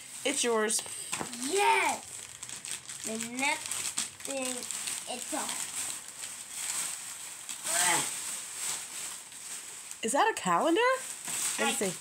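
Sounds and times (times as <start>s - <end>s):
packaging rustling: 0.0s - 12.0s.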